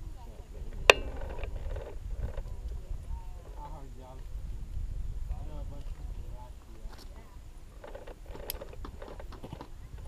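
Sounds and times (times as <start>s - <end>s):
people talking: 0.0s - 1.2s, 2.2s - 4.2s, 5.3s - 7.4s
wind rumble on microphone: 0.0s - 10.0s.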